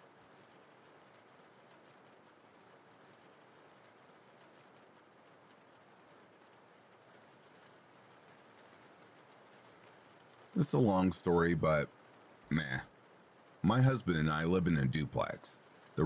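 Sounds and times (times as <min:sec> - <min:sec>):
faint rain hiss: 0:00.0 - 0:16.0.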